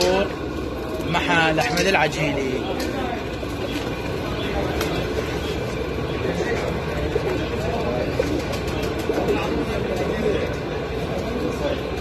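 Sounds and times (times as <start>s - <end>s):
low rumbling noise: 0.0s - 12.0s
pigeons cooing: 0.0s - 12.0s.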